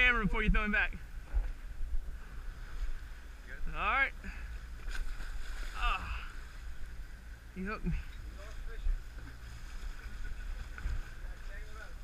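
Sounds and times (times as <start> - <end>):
wind and water rumble: 0.0 - 12.0.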